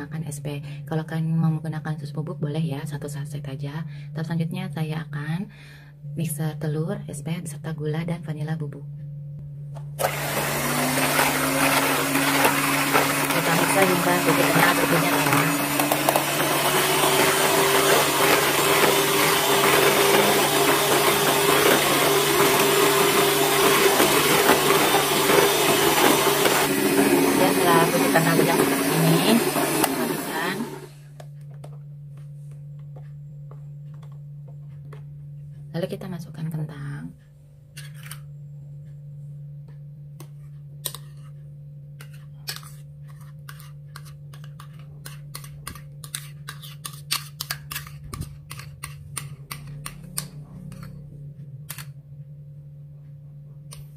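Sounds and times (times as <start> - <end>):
low hum: 0.1 - 46.0, 47.9 - 53.9
electric hand mixer running: 10.0 - 31.0.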